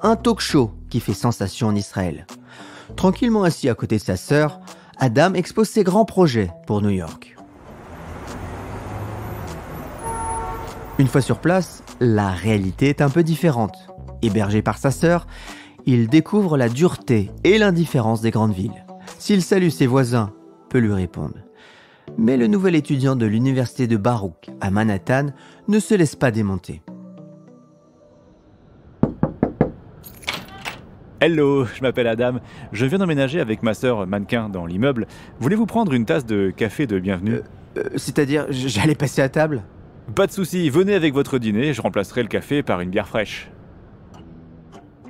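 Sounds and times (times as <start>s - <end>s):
passing cars and buses: 7.1s - 14.4s, 28.0s - 45.0s
knocking on a door: 29.0s - 29.8s.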